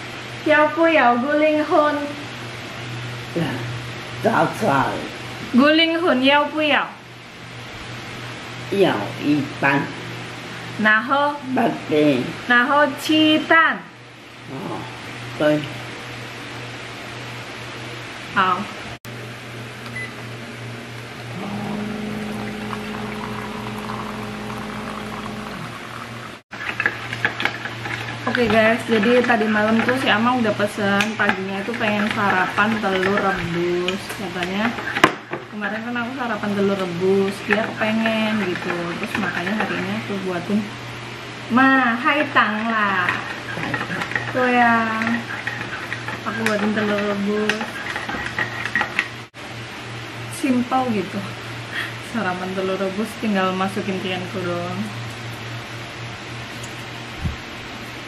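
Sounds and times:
low steady hum: 0:16.8 - 0:26.4
pump humming: 0:19.1 - 0:48.4
water pouring into a glass: 0:22.2 - 0:26.2.

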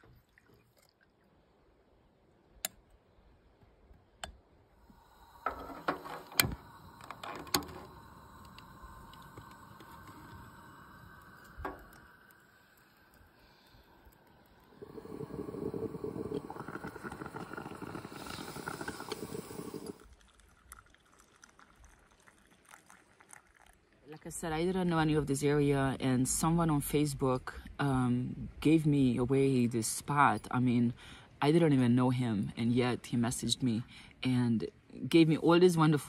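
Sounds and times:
gas burner hissing: 0:04.8 - 0:20.0
moka pot boiling and steaming: 0:04.8 - 0:24.3
metal clicks of moka pot: 0:05.4 - 0:12.4.

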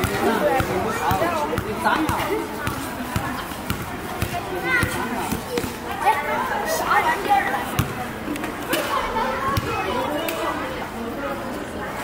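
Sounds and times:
basketball bouncing on paving: 0:00.0 - 0:05.6
children chattering and calling out: 0:00.0 - 0:12.0.

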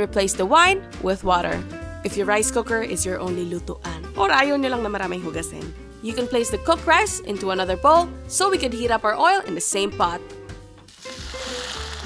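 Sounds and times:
background music: 0:00.0 - 0:12.0
hot oil sizzling: 0:10.8 - 0:12.0.

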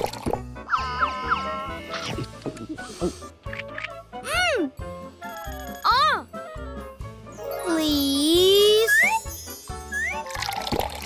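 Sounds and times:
cartoon background music: 0:00.0 - 0:11.0
shimmering sparkle sound effect: 0:07.3 - 0:10.1.

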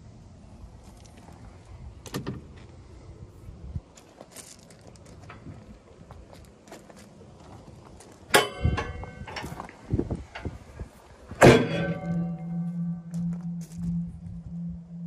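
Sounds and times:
loud metallic clank: 0:08.3 - 0:09.6, 0:11.4 - 0:15.0.

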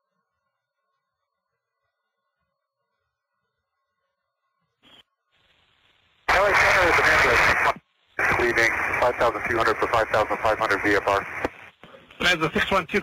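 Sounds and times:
faint hiss: 0:04.8 - 0:13.0
noisy radio voice transmission: 0:06.3 - 0:13.0.

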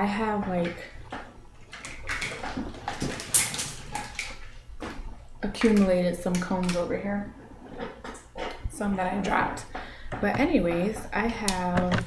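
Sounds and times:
combs handled clicking and rustling: 0:01.1 - 0:07.0.

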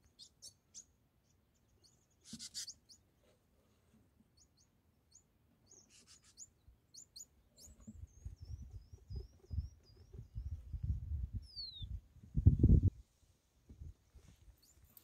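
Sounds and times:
small birds chirping: 0:00.0 - 0:03.4, 0:04.1 - 0:12.7, 0:14.2 - 0:15.0.

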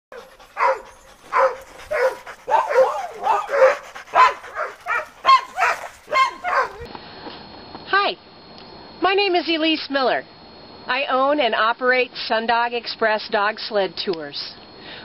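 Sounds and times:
dogs barking: 0:00.1 - 0:06.9.

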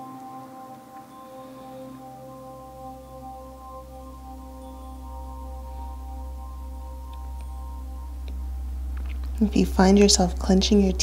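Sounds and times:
ambient bell-like drone music: 0:00.0 - 0:11.0
deep bass: 0:03.6 - 0:11.0.

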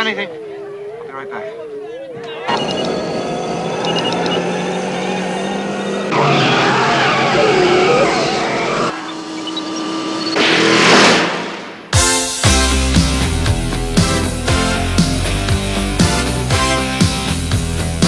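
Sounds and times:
electronic hum: 0:00.0 - 0:06.2
short beeps: 0:01.8 - 0:05.6
tyres squealing in a burnout: 0:01.8 - 0:10.5
rising rush of noise: 0:02.5 - 0:12.0.

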